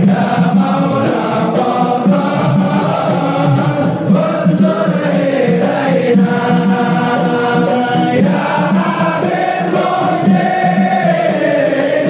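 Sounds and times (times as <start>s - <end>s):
men singing a devotional chant: 0.0s - 12.0s.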